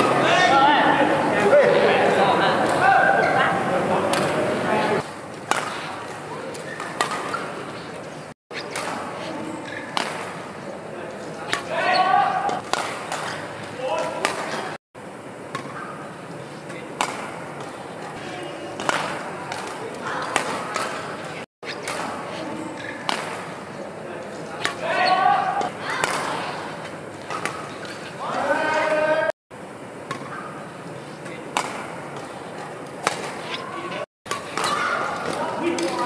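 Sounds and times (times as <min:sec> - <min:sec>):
rackets hitting shuttlecock: 0:02.6 - 0:03.4, 0:04.0 - 0:04.4, 0:05.0 - 0:14.8, 0:15.4 - 0:29.0, 0:30.0 - 0:36.0.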